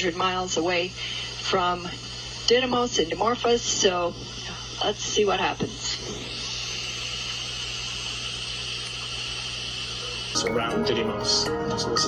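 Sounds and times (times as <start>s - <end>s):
low electrical hum: 0.0s - 12.0s
steady hiss: 0.1s - 11.8s.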